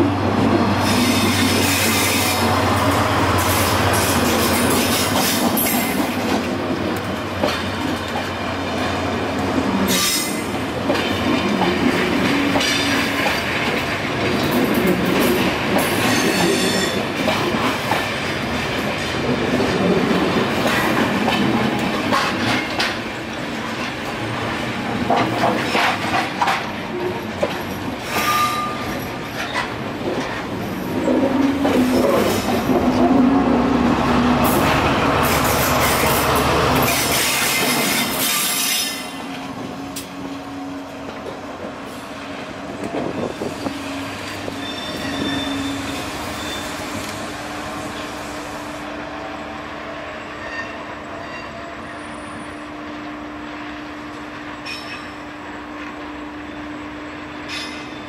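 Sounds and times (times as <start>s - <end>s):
diesel locomotive drone: 0.0s - 58.0s
train coaches rolling past: 0.0s - 58.0s
wheel squeal: 44.5s - 47.0s.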